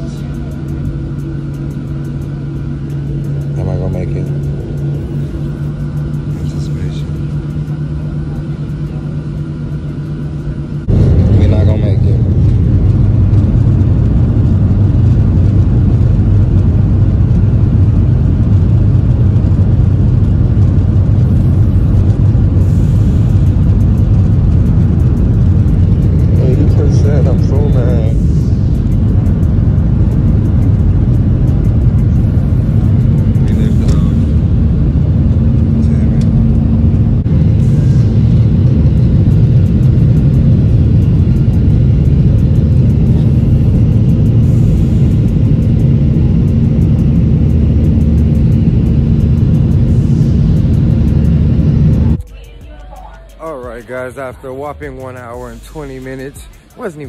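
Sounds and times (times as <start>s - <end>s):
jet airliner cabin rumble: 0.0s - 57.0s
steady hum: 0.0s - 57.0s.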